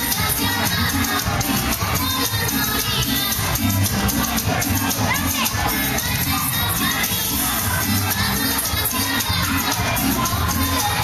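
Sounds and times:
latin dance music: 0.0s - 11.0s
crowd shouting and whooping: 3.2s - 11.0s.

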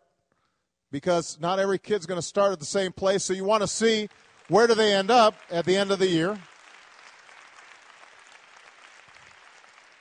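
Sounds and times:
audience applauding: 3.5s - 10.0s.

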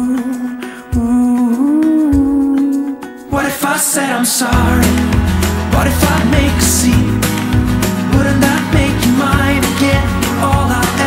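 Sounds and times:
pop ballad music: 0.0s - 11.0s.

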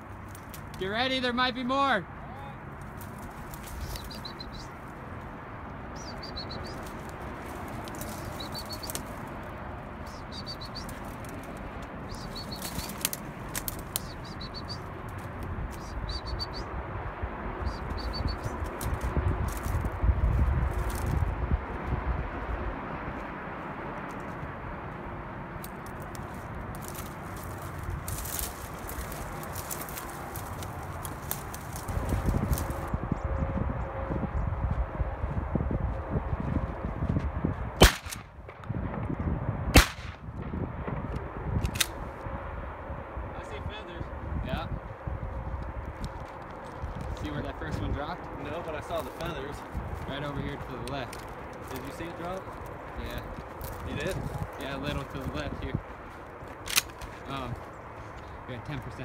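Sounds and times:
low rumble: 31.8s - 47.2s
shotgun shots: 37.8s - 38.4s, 39.7s - 40.2s.

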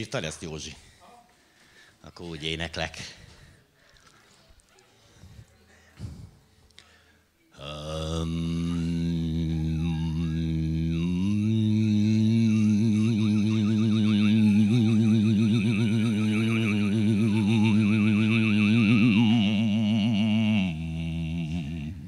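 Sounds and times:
low steady drone: 7.6s - 22.0s.

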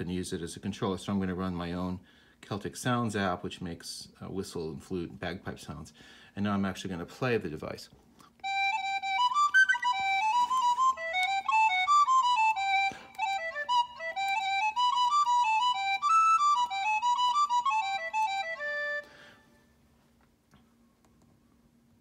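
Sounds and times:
synthesized wind instrument folk melody: 8.4s - 19.6s.

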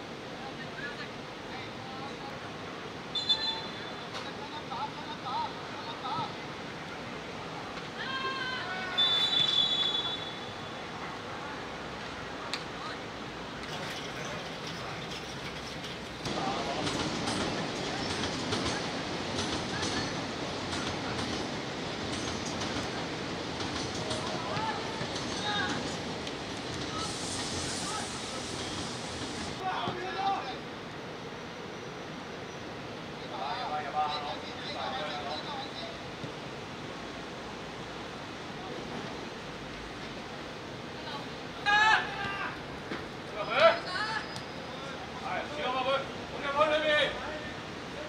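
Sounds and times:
referee's whistle: 3.1s - 4.0s, 8.9s - 10.8s
players shouting: 7.9s - 10.4s, 41.6s - 42.7s.

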